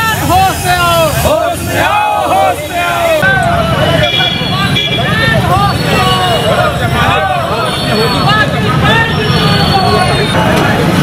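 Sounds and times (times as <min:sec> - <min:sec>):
crowd talking: 0:00.0 - 0:11.0
low rumble of street traffic: 0:00.0 - 0:11.0.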